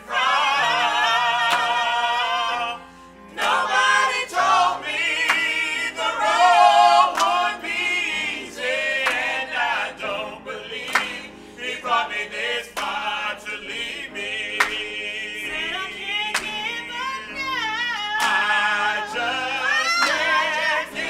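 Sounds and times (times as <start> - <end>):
vocal group singing in harmony: 0.0 - 21.0.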